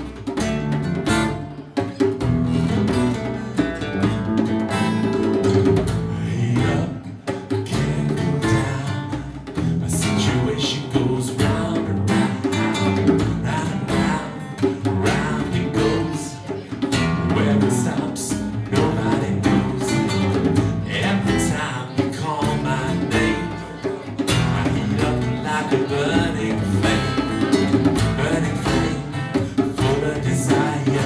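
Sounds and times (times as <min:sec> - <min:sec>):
djembe drumming: 0:00.0 - 0:31.0
strummed acoustic guitars: 0:00.0 - 0:31.0
electric bass: 0:02.2 - 0:03.2
man singing: 0:05.7 - 0:31.0.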